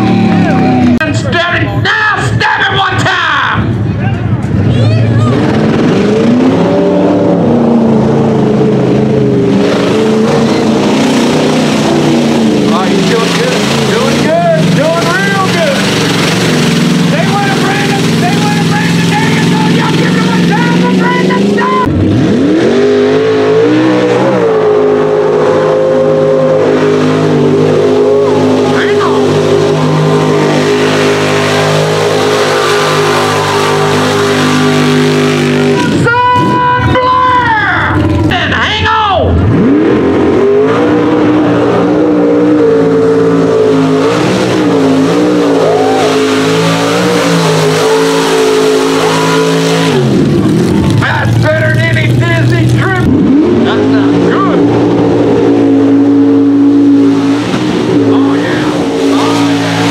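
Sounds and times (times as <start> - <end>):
truck engine rising in revs: 0.0 - 2.5, 3.6 - 59.9
truck engines revving hard: 0.0 - 59.9.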